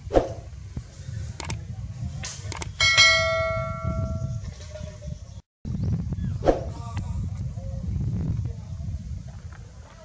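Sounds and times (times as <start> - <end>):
quick clicks: 1.4 - 1.6, 2.5 - 2.8
bright bell chime: 2.8 - 4.4.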